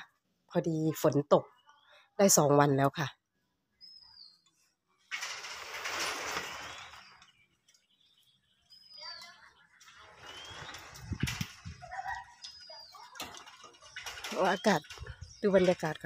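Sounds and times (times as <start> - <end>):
metal gate scraping and rattling: 5.1 - 7.5, 9.8 - 16.0
bird whistling: 10.2 - 11.0.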